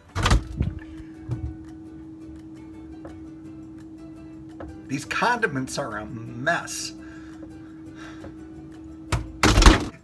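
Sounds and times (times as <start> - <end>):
refrigerator door thump: 0.0 - 1.7, 9.1 - 10.0
refrigerator hum: 0.0 - 10.0.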